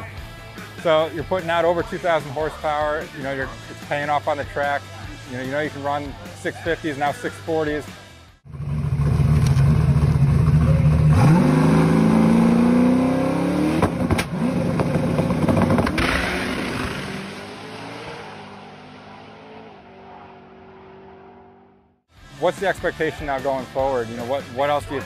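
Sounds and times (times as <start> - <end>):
car engine revving: 8.5 - 23.0.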